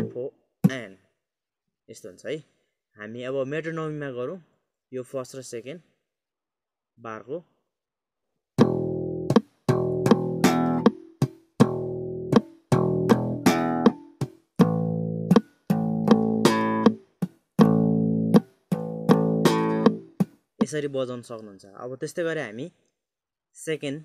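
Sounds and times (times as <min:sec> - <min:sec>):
slap bass guitar: 0:00.0 - 0:00.2, 0:08.6 - 0:17.0, 0:17.6 - 0:20.2.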